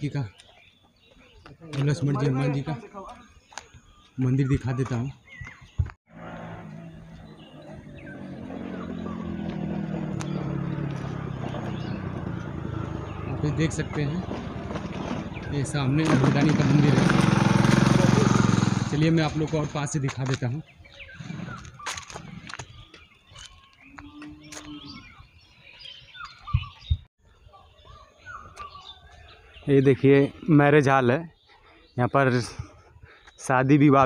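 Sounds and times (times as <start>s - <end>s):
birds chirping and calling: 0.0s - 34.0s
motorcycle engine running: 6.1s - 20.1s.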